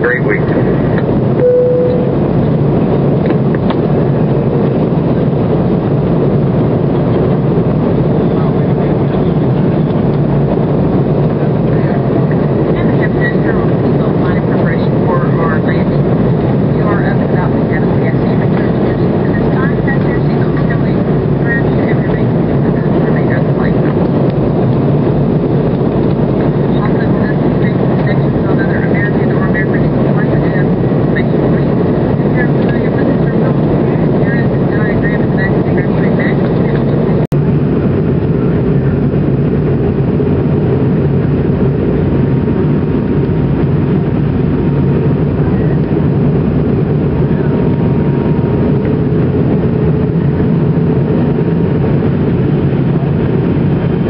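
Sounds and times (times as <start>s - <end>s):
airliner cabin roar: 0.0s - 54.0s
jet engine hum: 0.0s - 54.0s.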